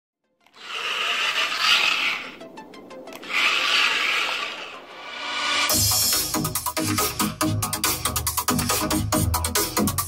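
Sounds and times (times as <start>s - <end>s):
toy robot motors whirring: 0.4s - 2.4s, 3.1s - 5.8s.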